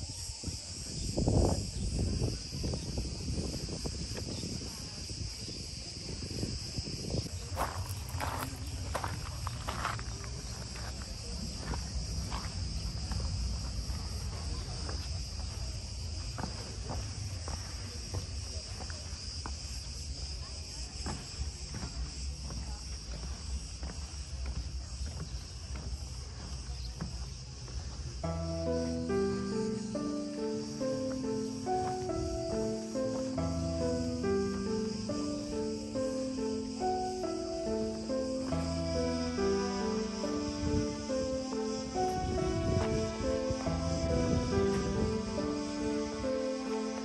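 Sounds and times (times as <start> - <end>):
wind rumbling on microphone: 0.0 - 28.3, 40.2 - 46.3
cicadas buzzing: 0.0 - 47.0
footsteps: 7.2 - 47.0.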